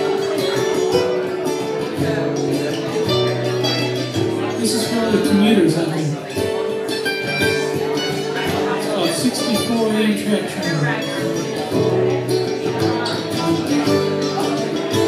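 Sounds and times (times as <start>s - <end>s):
second guitar playing: 0.0s - 15.0s
strummed acoustic guitar: 0.0s - 15.0s.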